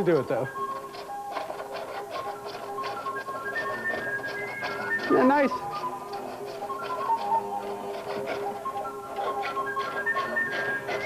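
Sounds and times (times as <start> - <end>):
recorder music from a record: 0.0 - 11.0.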